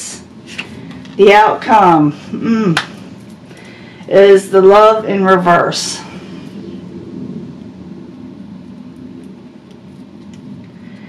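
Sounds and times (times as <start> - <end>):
low room tone rumble: 0.0 - 11.0.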